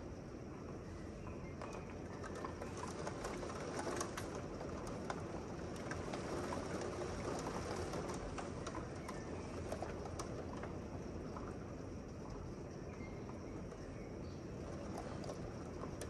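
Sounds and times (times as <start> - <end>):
raindrops tapping window glass: 1.6 - 12.4
steady rain falling: 1.6 - 16.0.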